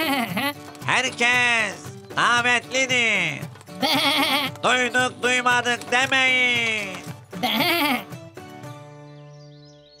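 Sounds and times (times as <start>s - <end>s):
cartoon goat bleating laugh: 0.0s - 0.6s, 3.8s - 4.6s, 7.4s - 8.1s
music with held notes: 0.0s - 10.0s.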